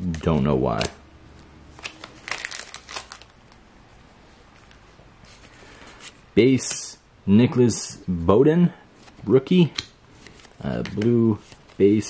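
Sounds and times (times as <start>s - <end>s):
cards rustling and flicking: 1.7s - 3.6s, 9.0s - 12.0s.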